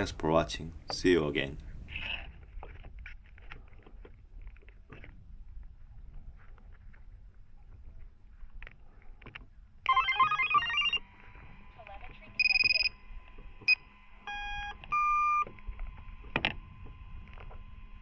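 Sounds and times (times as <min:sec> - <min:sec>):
faint steady whine: 0:00.0 - 0:18.0
electronic startup tune beeps: 0:09.9 - 0:11.0, 0:12.4 - 0:13.0
single electronic beeps: 0:09.9 - 0:11.0, 0:12.3 - 0:15.5.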